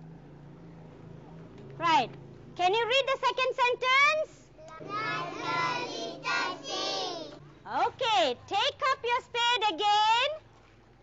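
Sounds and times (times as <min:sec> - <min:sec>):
children reading aloud in unison: 0:03.4 - 0:07.4.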